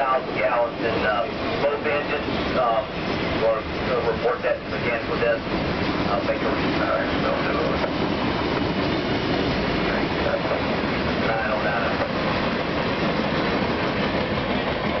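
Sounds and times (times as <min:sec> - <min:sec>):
freight train rolling past: 0:00.0 - 0:15.0
wheels clicking on rail: 0:00.0 - 0:15.0.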